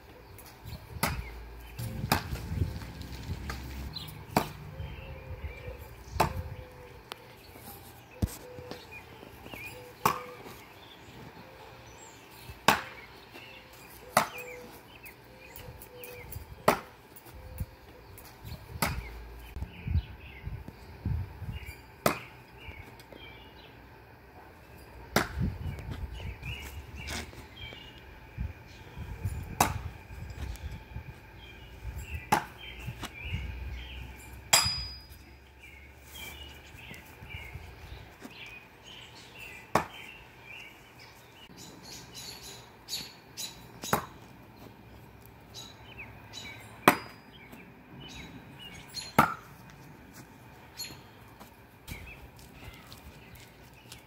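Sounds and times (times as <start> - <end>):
birds chirping: 0.0 - 54.0.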